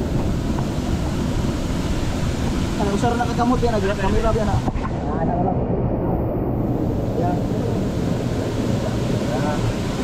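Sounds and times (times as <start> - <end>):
waterfall rushing: 0.0 - 5.2, 6.0 - 10.0.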